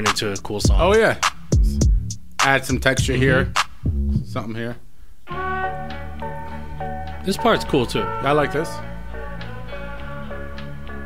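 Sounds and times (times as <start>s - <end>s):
hip-hop instrumental beat: 0.0s - 4.4s, 5.3s - 11.0s.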